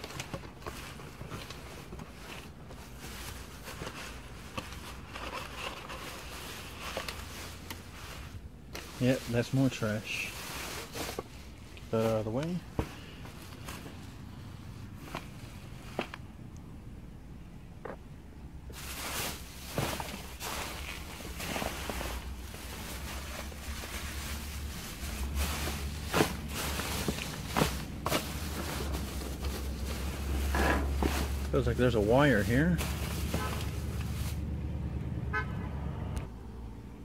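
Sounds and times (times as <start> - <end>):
plastic bags crinkling: 0.0 - 14.0, 18.7 - 34.4.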